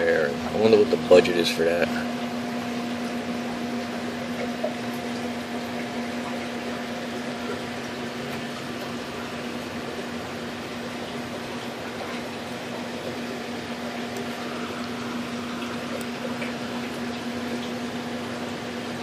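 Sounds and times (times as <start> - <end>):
steady machine hum: 0.0 - 19.0.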